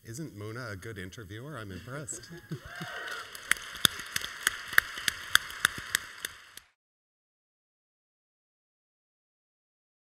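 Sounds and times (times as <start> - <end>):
crowd applauding: 1.9 - 6.8
sharp close claps: 2.4 - 6.8.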